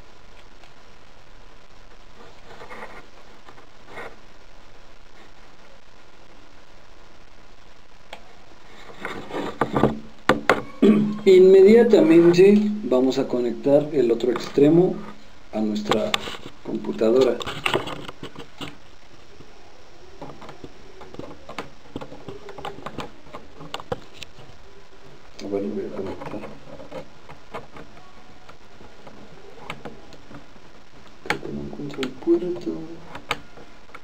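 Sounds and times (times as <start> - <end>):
cable handling rustling: 15.8 - 18.9.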